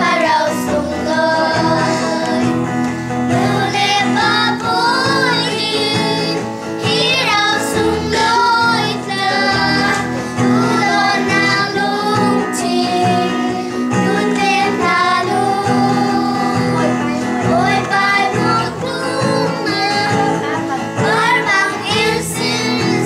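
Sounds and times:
children singing: 0:00.0 - 0:23.0
instrumental accompaniment: 0:00.0 - 0:23.0.

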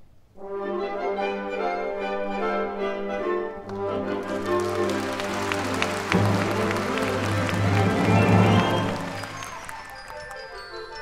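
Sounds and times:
low brass chords: 0:03.7 - 0:09.7
concert band playing: 0:03.8 - 0:10.4.

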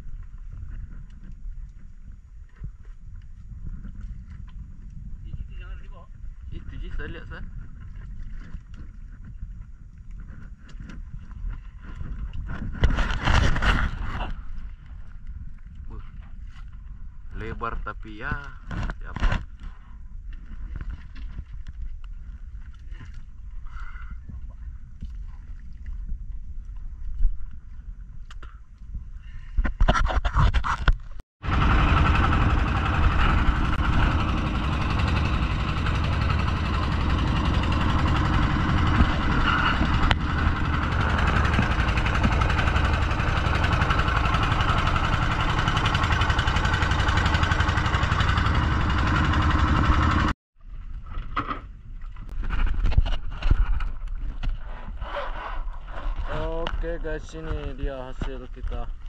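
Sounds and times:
rushing wind and water: 0:00.0 - 0:51.0
boat engine drone: 0:31.4 - 0:50.4
low rumble: 0:31.4 - 0:51.0.

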